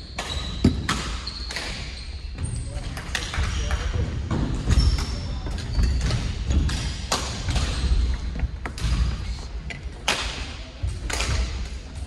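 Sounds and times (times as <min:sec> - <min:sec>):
rackets hitting shuttlecock: 0:00.2 - 0:01.9, 0:06.0 - 0:08.0, 0:09.7 - 0:12.0.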